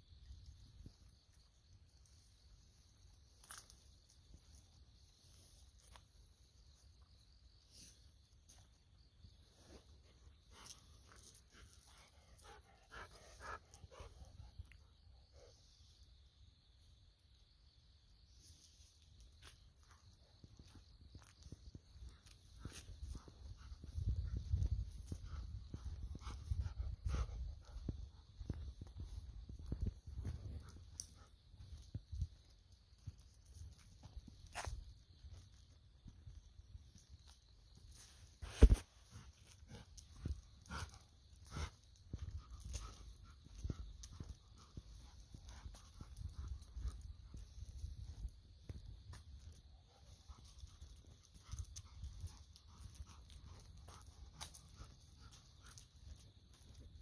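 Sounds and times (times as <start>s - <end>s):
insects chirping: 0.0s - 57.0s.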